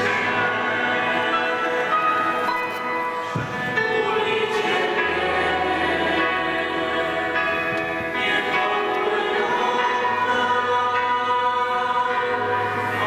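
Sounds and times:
voices singing a hymn: 0.0 - 13.0.

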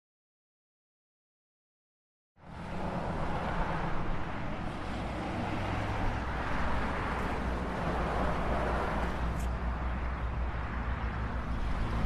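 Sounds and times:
road traffic rumble: 2.4 - 12.0.

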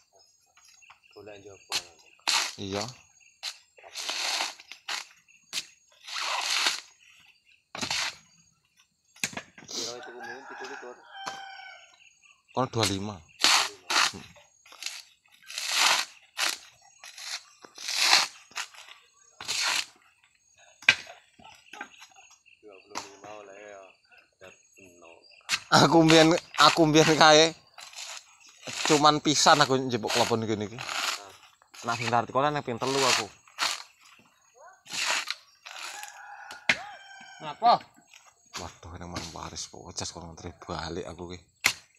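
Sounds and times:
rooster crowing: 9.9 - 12.0, 35.7 - 37.6
coconut husk crunching and tearing: 13.4 - 18.9, 25.8 - 32.1, 32.8 - 34.0, 34.9 - 37.2
blade striking coconut: 34.9 - 36.9, 41.6 - 41.9.

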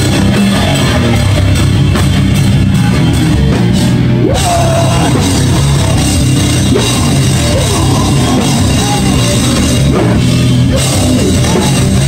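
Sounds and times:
drum kit: 0.0 - 12.0
live rock band playing: 0.0 - 12.0.

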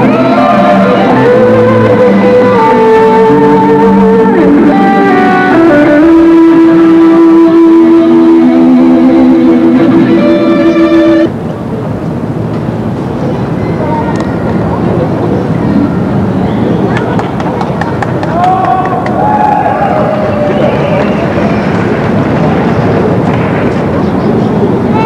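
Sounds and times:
amplified electric guitars: 0.0 - 11.4
outdoor crowd chatter: 0.0 - 25.0.

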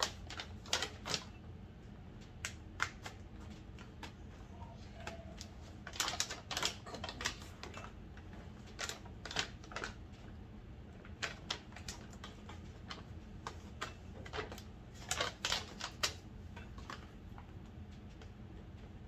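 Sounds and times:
plastic bag crinkling: 5.8 - 7.9.

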